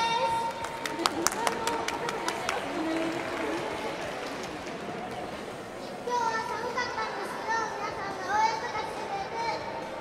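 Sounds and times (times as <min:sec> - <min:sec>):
young girls talking and calling out: 0:00.0 - 0:03.1, 0:05.8 - 0:10.0
murmur of hall noise: 0:00.0 - 0:10.0.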